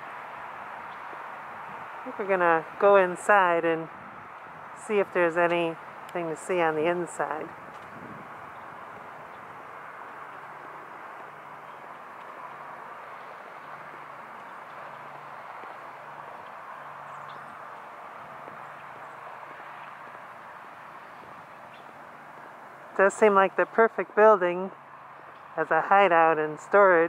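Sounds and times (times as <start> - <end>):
outdoor background hiss: 0.0 - 27.0
soft footsteps: 7.5 - 10.8.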